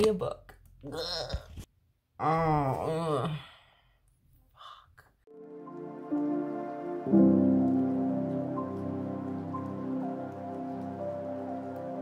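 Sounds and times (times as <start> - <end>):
soft music with sustained chords: 5.3 - 12.0.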